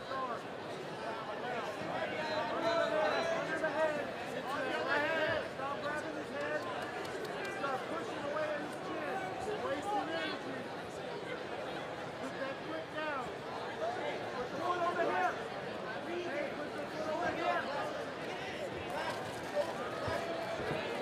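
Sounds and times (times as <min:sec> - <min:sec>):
crowd shouting and calling out: 0:00.0 - 0:21.0.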